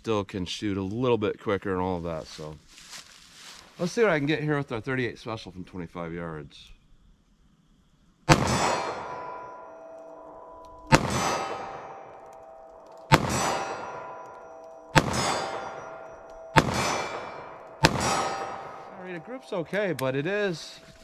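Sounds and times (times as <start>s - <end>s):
handgun shots: 8.3s - 9.1s, 10.9s - 11.9s, 13.1s - 14.1s, 14.9s - 18.8s
steel target ringing: 8.3s - 21.0s.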